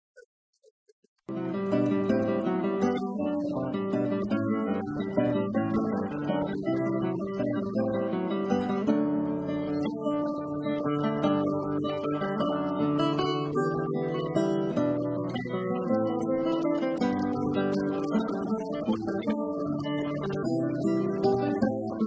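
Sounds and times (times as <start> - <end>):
acoustic guitar music: 1.3 - 22.0.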